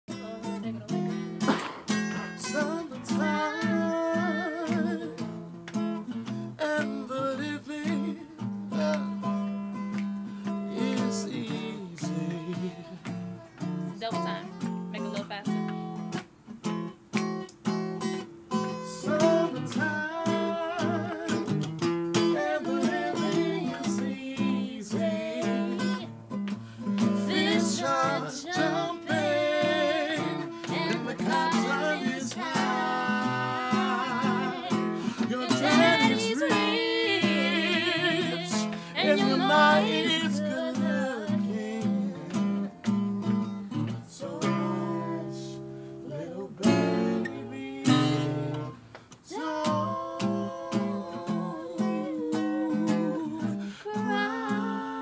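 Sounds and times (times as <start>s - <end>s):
people singing: 0.1s - 5.4s, 6.1s - 9.6s, 10.5s - 13.7s, 18.5s - 26.1s, 26.8s - 55.0s
acoustic guitar strumming: 0.1s - 55.0s.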